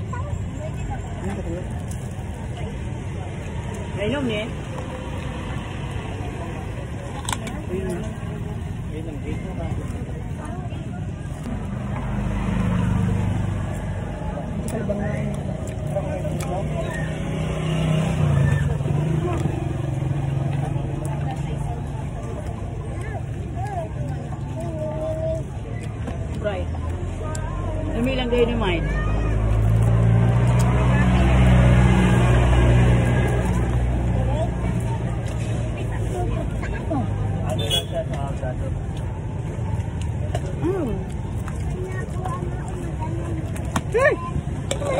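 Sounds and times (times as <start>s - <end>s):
distant voices chattering: 0.0s - 44.9s
low rumble of passing vehicles: 0.0s - 44.9s.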